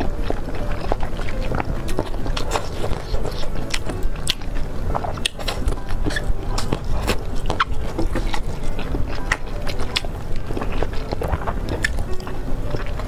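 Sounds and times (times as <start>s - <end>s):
close-miked chewing: 0.0s - 13.0s.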